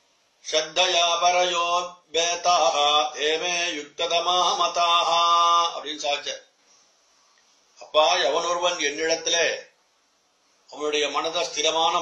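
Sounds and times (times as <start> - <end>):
man chanting a verse: 0.5 - 6.4, 7.8 - 9.6, 10.7 - 12.0.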